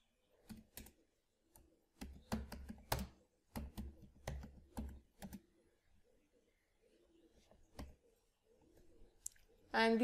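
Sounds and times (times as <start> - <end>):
typing on a keyboard: 1.6 - 5.4.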